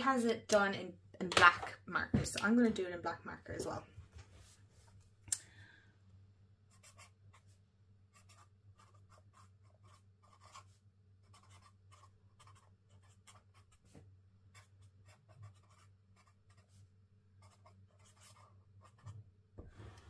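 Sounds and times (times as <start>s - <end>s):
marker scratching on paper: 6.7s - 19.2s.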